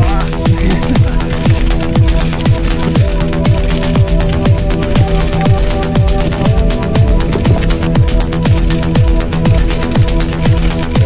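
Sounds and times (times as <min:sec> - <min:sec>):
electronic music with steady beat: 0:00.0 - 0:11.0
short falling bass notes: 0:04.5 - 0:09.7.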